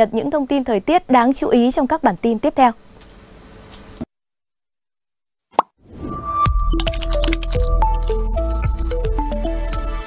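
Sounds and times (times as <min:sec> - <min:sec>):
short pop-like blip: 0:05.5 - 0:05.8
outro music: 0:06.0 - 0:10.0.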